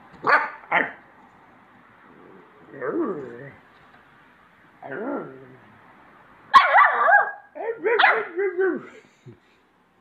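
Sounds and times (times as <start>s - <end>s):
puppy barking: 0.2s - 1.0s, 6.5s - 8.4s.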